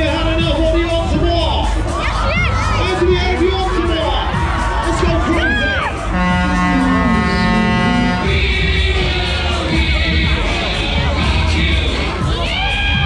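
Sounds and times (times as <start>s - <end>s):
loud music over sound system: 0.0s - 13.0s
crowd shouting and whooping: 1.8s - 9.4s, 11.8s - 13.0s
long steady horn-like tone: 6.1s - 8.5s.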